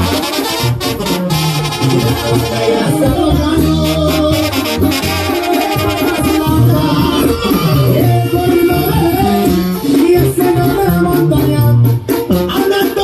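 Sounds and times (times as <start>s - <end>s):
latin dance band through pa: 0.0s - 13.0s
man singing: 1.9s - 13.0s.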